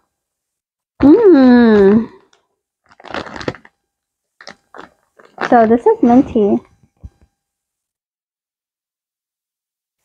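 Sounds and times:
plastic wrapper handled: 0:02.3 - 0:03.8, 0:04.4 - 0:06.2
wax cube crackling and snapping: 0:02.9 - 0:03.8.

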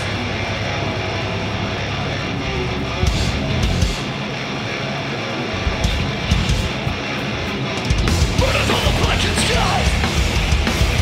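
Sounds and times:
distorted electric guitar riffing: 0:00.0 - 0:11.0
drums and cymbal hits: 0:02.9 - 0:04.4, 0:05.6 - 0:11.0.

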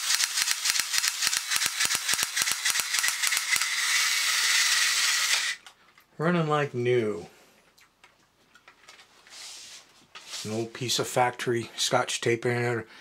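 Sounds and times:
rapid mechanism clicking: 0:00.0 - 0:05.6
toy motor whirring: 0:00.0 - 0:05.7.

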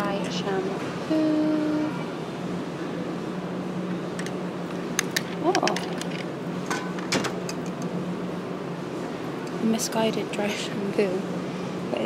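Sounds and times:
ventilation hum: 0:00.0 - 0:12.0.

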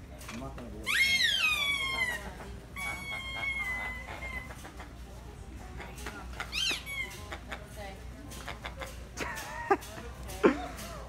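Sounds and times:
squeaky dog toy squeaking: 0:00.8 - 0:04.6, 0:06.4 - 0:07.4.

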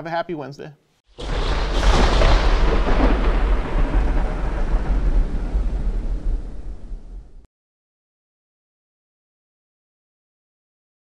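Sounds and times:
thunder rumble: 0:01.1 - 0:07.5.

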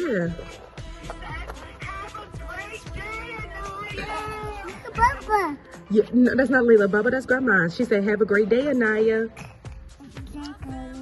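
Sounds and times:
music: 0:00.0 - 0:11.0
high-pitched sing-song voice: 0:10.0 - 0:11.0.

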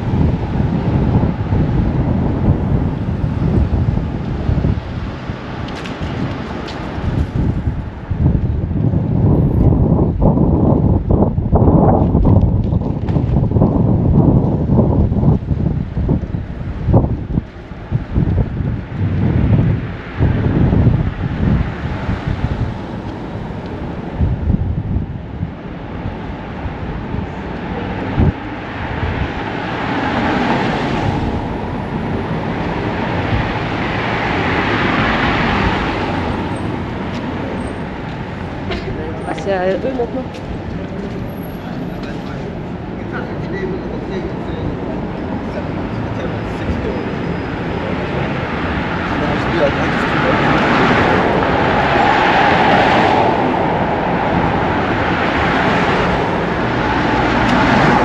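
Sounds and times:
car approaching: 0:00.0 - 0:58.0
street ambience: 0:00.0 - 0:58.0
wind buffeting microphone: 0:00.0 - 0:58.0.

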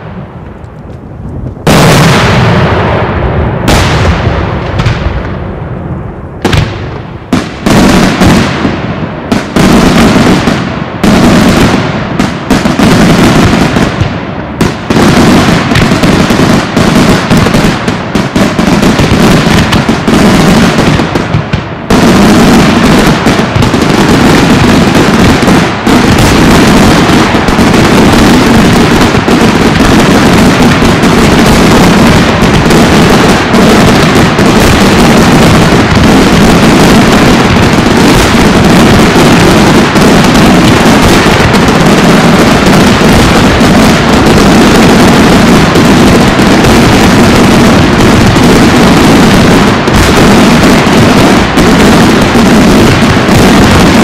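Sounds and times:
fireworks bangs: 0:00.0 - 0:54.0.

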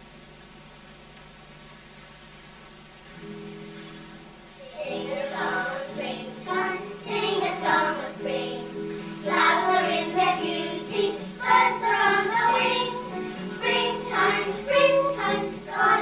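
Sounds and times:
instrumental accompaniment of held notes: 0:03.2 - 0:16.0
children singing together: 0:04.6 - 0:16.0.

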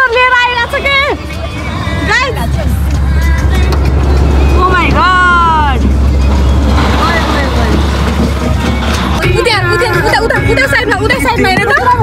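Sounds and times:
car road noise: 0:00.0 - 0:12.0.

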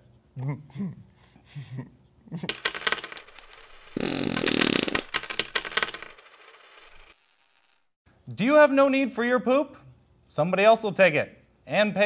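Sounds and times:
coins falling onto coins: 0:02.5 - 0:07.9.

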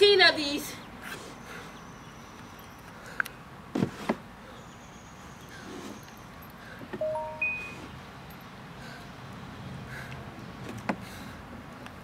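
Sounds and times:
high chirp: 0:07.0 - 0:08.0.

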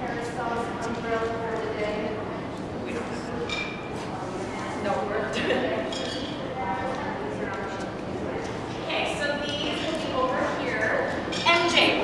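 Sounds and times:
children's voices in a hall: 0:00.0 - 0:12.0.

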